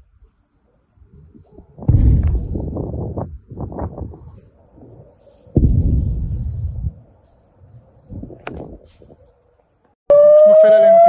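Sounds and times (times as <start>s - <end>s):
distant explosions: 1.8s - 4.2s, 5.6s - 7.0s.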